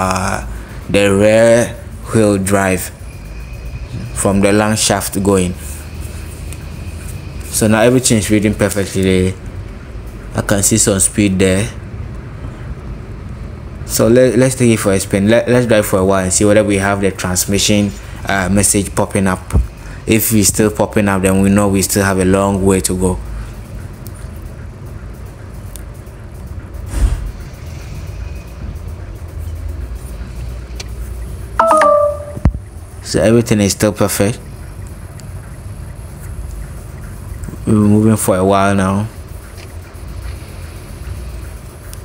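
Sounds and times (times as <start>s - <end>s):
road noise inside car cabin: 0.0s - 42.0s
short electronic beep: 31.6s - 32.5s.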